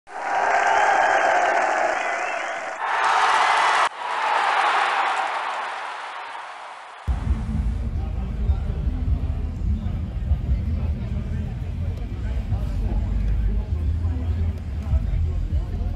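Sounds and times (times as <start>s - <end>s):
crowd applause and cheering: 0.1s - 7.3s
music: 7.1s - 15.9s.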